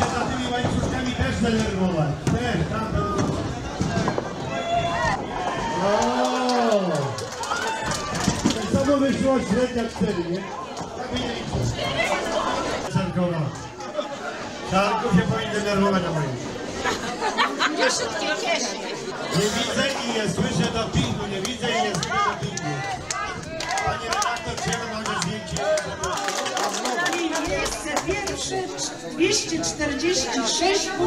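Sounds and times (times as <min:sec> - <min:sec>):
balls knocking pins: 0:00.0 - 0:06.2
bowling balls rolling: 0:00.0 - 0:12.9
people talking at once: 0:00.0 - 0:31.0
people's voices: 0:00.0 - 0:31.0.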